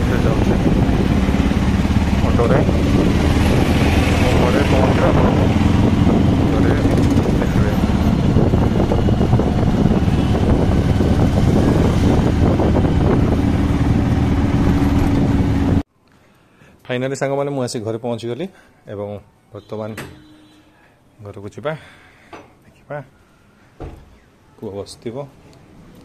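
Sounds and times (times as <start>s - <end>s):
auto-rickshaw engine running: 0.0s - 15.8s
road noise: 0.0s - 15.9s.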